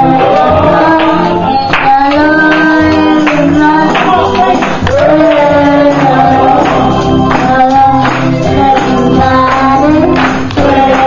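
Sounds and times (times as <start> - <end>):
woman and child singing gospel: 0.0 - 11.0.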